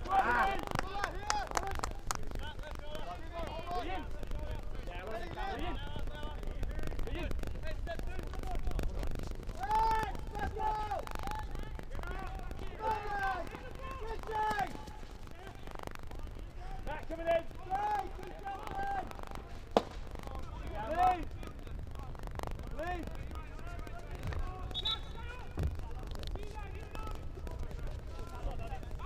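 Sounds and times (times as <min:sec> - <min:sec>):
players shouting: 0:00.0 - 0:02.0, 0:09.6 - 0:15.6, 0:16.6 - 0:21.3
low outdoor rumble: 0:00.0 - 0:29.0
hockey stick striking ball: 0:19.7 - 0:20.1.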